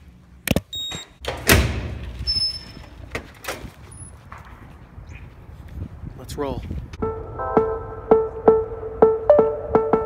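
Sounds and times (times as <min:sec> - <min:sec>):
door opening: 0:00.5 - 0:04.6
wind rumble: 0:01.7 - 0:10.0.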